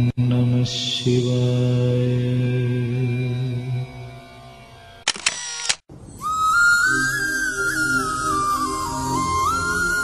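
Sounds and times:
camera shutter clicks: 5.0 - 5.8
high melody over low accompaniment: 6.0 - 10.0
music: 6.0 - 10.0.

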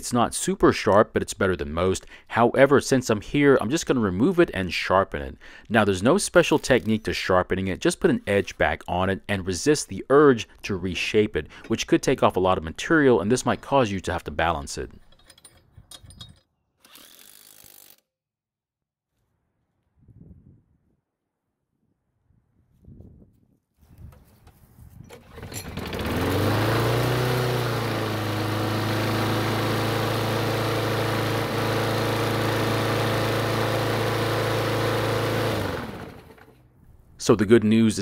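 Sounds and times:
lawn mower engine running: 25.1 - 36.6.

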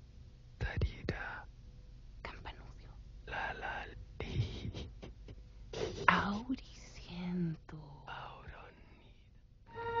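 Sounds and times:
person whispering and breathing: 0.6 - 1.5, 2.2 - 5.1, 5.8 - 9.4.

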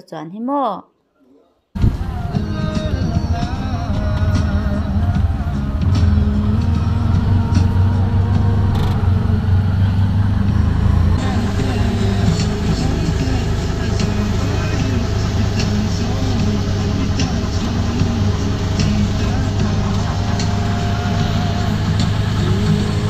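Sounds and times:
indistinct voices: 1.2 - 23.0
vehicle engine drone: 1.8 - 23.0.

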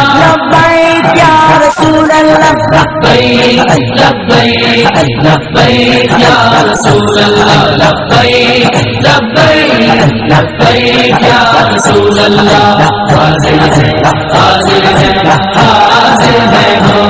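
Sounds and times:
devotional chant-like singing with music: 0.0 - 17.0.

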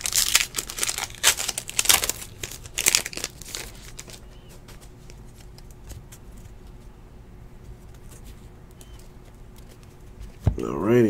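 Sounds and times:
foil wrapper crinkling and tearing: 0.0 - 6.5.

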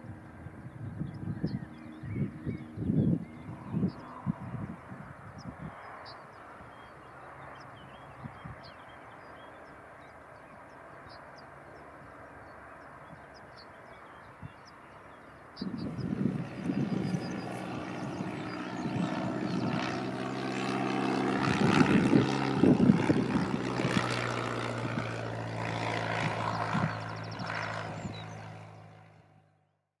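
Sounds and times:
propeller aircraft flying past: 0.0 - 29.9.

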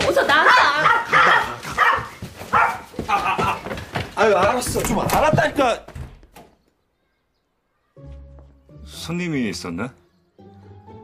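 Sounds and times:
small dog barking: 0.4 - 2.9.

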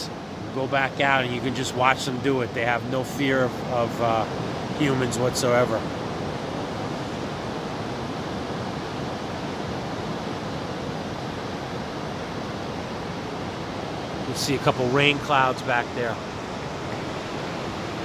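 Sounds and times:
ocean surf on sandy beach: 0.0 - 18.0.

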